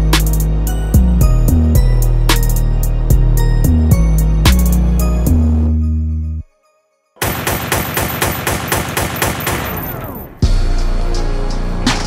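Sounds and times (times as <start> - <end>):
rapid automatic gunfire: 7.2 - 10.4.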